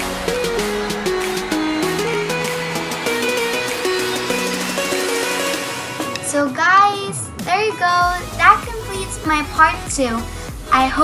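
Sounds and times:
background guitar music: 0:00.0 - 0:11.0
girl sing-song speaking: 0:06.2 - 0:11.0.

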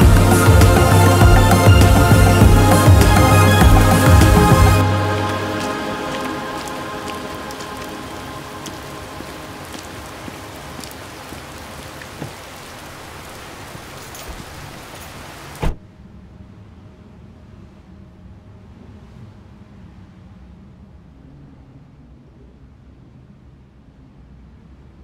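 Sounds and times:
music: 0:00.0 - 0:09.6
steady rain: 0:00.0 - 0:20.2.

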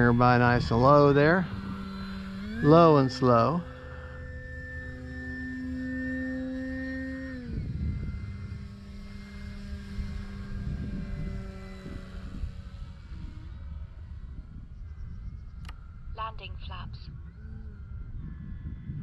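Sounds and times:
model airplane electric motor whining: 0:00.0 - 0:16.1, 0:17.3 - 0:19.0
low rumble: 0:00.0 - 0:19.0.

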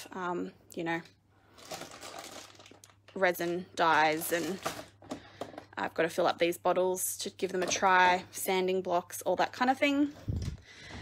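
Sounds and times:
plastic bag crinkling: 0:01.5 - 0:05.2.

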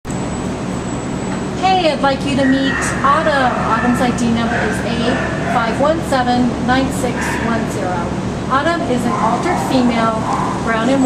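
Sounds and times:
woman speaking: 0:01.6 - 0:11.0.

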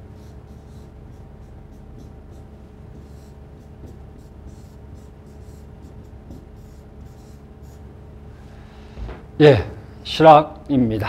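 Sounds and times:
marker scratching on board: 0:00.0 - 0:08.0
low room hum: 0:00.0 - 0:11.0.

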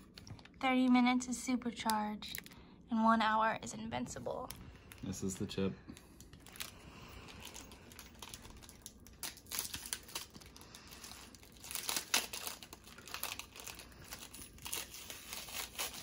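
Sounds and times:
pouch crinkling as torn open: 0:07.4 - 0:16.0.

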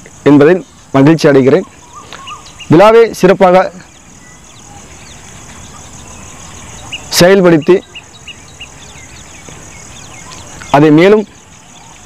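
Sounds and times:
faint bird chirps: 0:00.0 - 0:12.0
insect chorus: 0:00.0 - 0:12.0.

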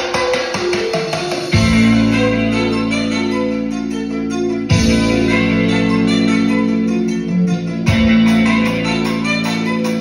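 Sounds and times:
recorded music with guitar and bass: 0:00.0 - 0:10.0.

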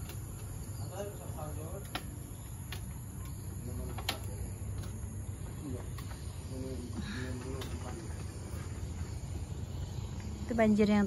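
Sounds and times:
insect chirring chorus: 0:00.0 - 0:11.0
faint distant voices: 0:00.7 - 0:11.0.

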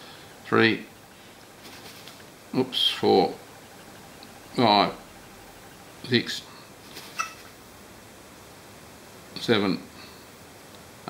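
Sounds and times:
bird squeak: 0:07.0 - 0:07.5.

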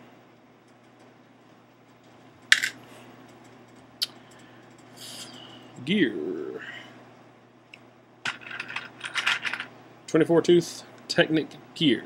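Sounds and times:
faint steady hum: 0:00.0 - 0:12.0
plastic pieces clattering: 0:08.3 - 0:09.7.

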